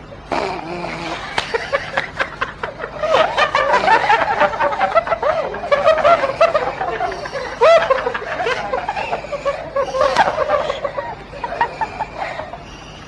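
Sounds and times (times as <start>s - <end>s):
people laughing: 0.8s - 13.0s.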